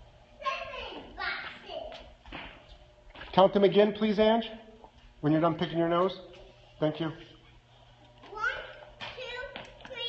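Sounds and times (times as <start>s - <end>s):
young children's voices: 0.4s - 2.1s, 8.3s - 10.0s.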